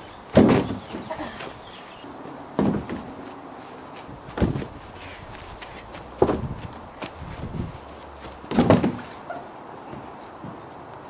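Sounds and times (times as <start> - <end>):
body thumping on grass: 0.3 - 1.8, 2.5 - 3.3, 3.9 - 10.7.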